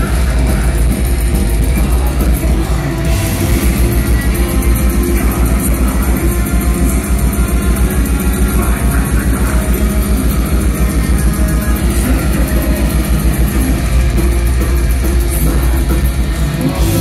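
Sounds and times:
distorted guitars: 0.0 - 17.0
drums with rapid kick drum: 0.0 - 17.0.

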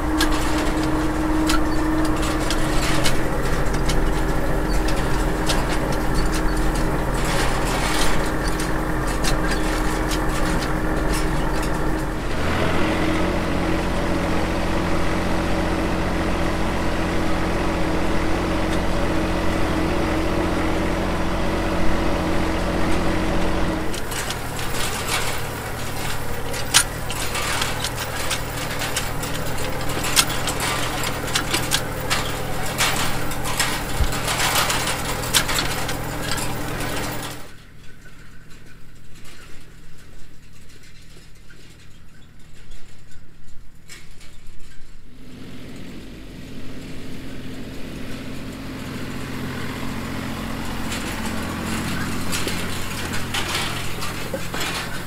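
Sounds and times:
tractor diesel engine running: 0.0 - 43.1, 45.1 - 55.0
hay rake clicks and rattles: 0.0 - 55.0.

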